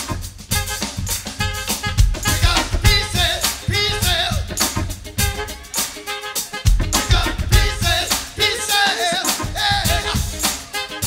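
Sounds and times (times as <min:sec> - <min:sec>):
funk band playing: 0:00.0 - 0:11.0.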